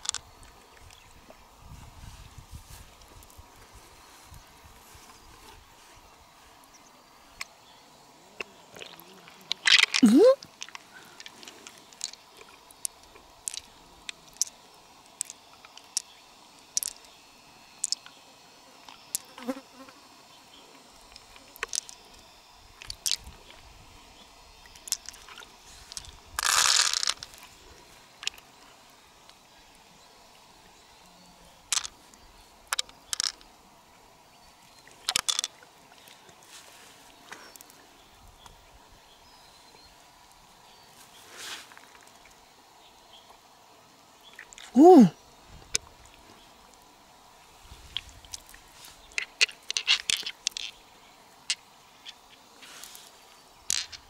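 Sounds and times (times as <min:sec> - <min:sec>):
noisy rustle: 0:00.0 - 0:06.7, 0:40.8 - 0:42.2, 0:47.3 - 0:51.1, 0:51.9 - 0:54.0
wet clicks and squelches: 0:21.2 - 0:22.0.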